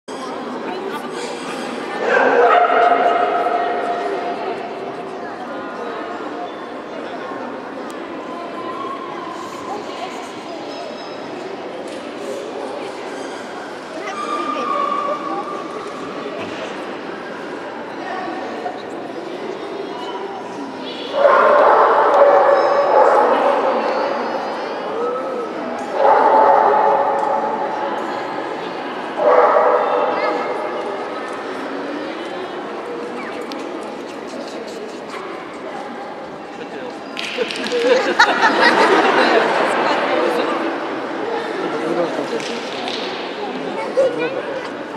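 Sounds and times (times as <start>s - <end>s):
voices echoing in a hall: 0.1s - 44.9s
dog barking: 2.0s - 3.2s, 21.2s - 23.3s.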